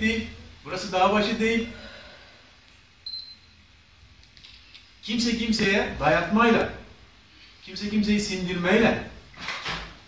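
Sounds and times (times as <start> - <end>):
short high-pitched beep: 3.0 - 3.6.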